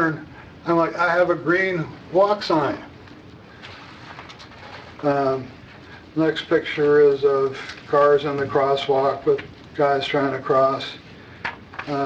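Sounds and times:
paper rustling: 3.0s - 9.7s.

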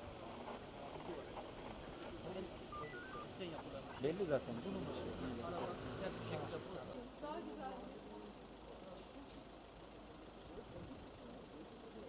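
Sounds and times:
short electronic beeps: 2.7s - 3.4s.

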